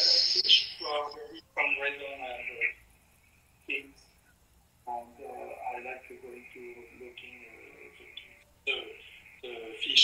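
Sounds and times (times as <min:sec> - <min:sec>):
faint speech over video call: 0:00.0 - 0:10.0.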